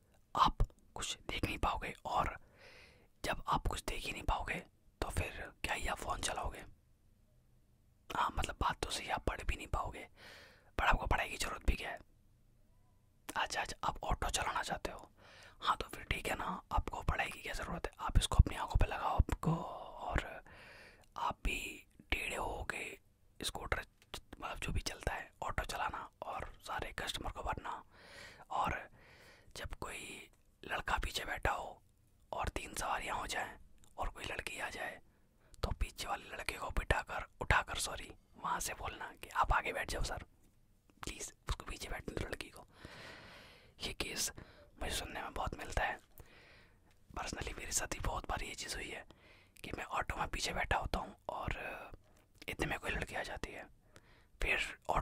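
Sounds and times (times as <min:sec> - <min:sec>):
man whispering: 0:00.1 - 0:02.5, 0:03.2 - 0:06.8, 0:08.1 - 0:12.1, 0:13.3 - 0:28.9, 0:29.5 - 0:40.3, 0:40.9 - 0:42.9, 0:43.7 - 0:46.2, 0:47.1 - 0:53.8, 0:54.4 - 0:55.0.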